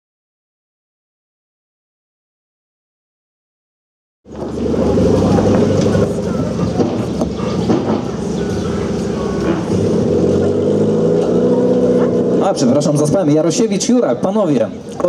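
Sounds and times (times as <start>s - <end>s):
car engine running at low revs: 4.3s - 13.2s.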